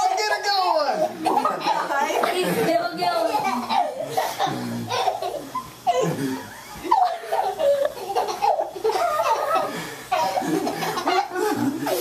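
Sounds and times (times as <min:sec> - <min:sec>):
people laughing hard: 0:04.9 - 0:12.0.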